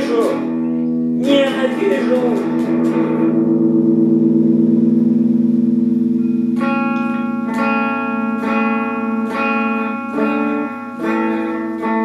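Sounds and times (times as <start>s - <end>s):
electric guitar chord ringing: 0.0s - 12.0s.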